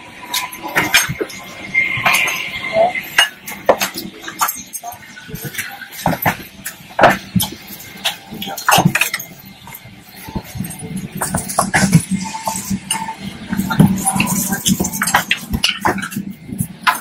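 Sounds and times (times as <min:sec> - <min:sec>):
low cabin hum: 0:00.0 - 0:17.0
passengers and bags moving: 0:00.0 - 0:17.0.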